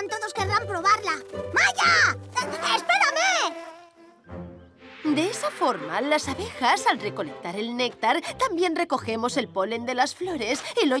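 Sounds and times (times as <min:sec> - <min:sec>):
cartoon bee wings buzzing: 0:01.8 - 0:04.4.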